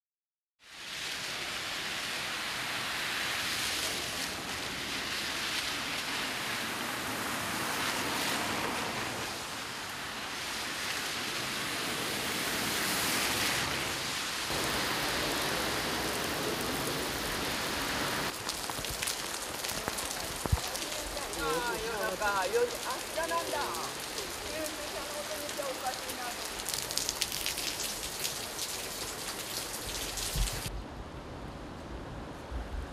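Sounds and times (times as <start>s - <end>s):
heavy rain on pavement: 0.6s - 30.8s
car splashing through water: 0.8s - 20.0s.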